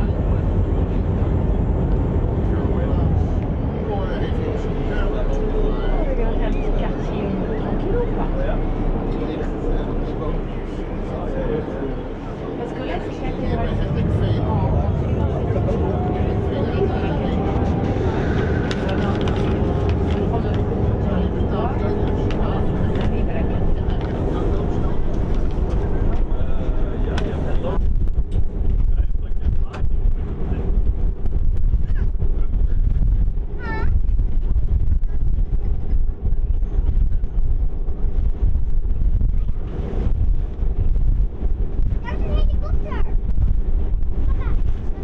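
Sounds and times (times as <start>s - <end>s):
background voices: 0.0s - 28.0s
ferry engine rumble: 0.0s - 45.0s
wind buffeting microphone: 0.0s - 45.0s.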